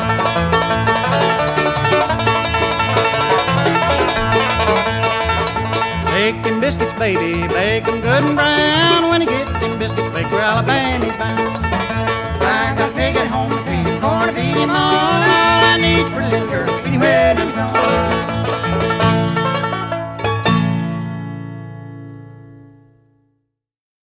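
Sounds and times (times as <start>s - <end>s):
bluegrass string band playing: 0.0s - 21.7s
banjo picking: 0.0s - 22.8s.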